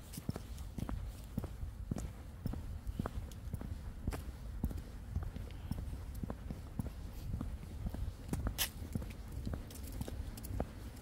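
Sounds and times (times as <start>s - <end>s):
footsteps on tarmac: 0.0s - 11.0s
steady low rumble: 0.0s - 11.0s.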